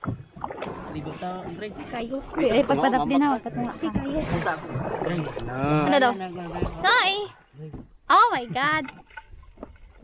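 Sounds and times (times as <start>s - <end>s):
boat being paddled: 0.0s - 10.0s.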